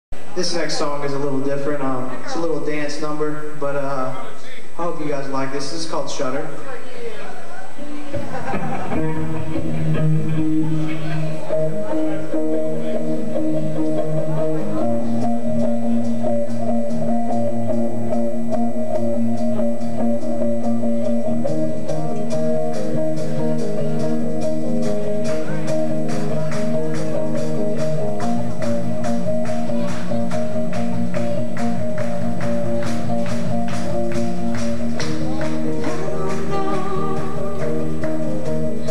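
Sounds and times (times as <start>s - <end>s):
electric guitar chords: 7.8s - 38.9s.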